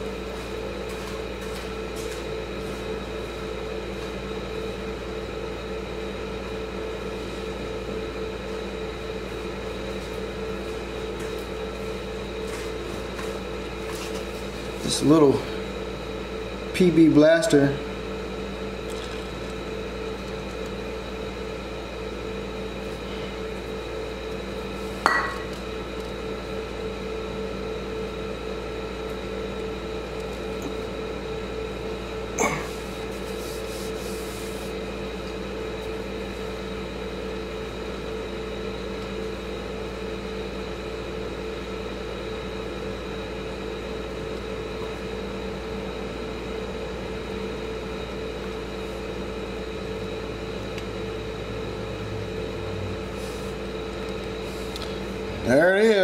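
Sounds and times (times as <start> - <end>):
steady multi-tone hum: 0.0 - 56.0.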